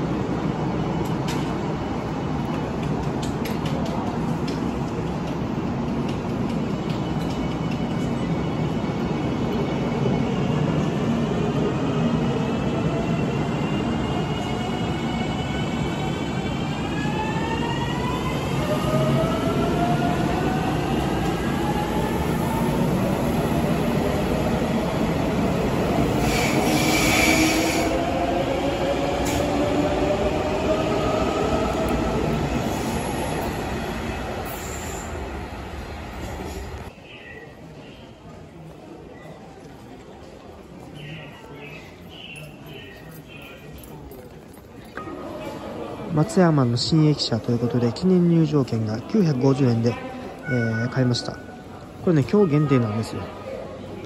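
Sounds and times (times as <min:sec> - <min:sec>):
train screech: 0:26.2 - 0:28.0, 0:34.4 - 0:35.2.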